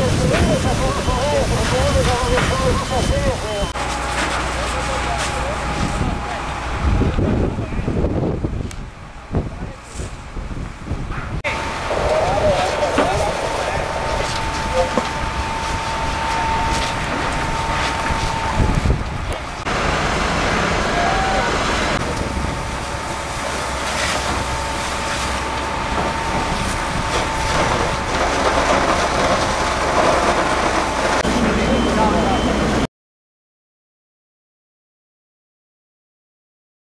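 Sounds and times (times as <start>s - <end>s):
machinery whining: 0.0s - 9.9s, 11.4s - 32.9s
dense rushing noise: 0.0s - 32.9s
indistinct voices: 11.4s - 32.9s.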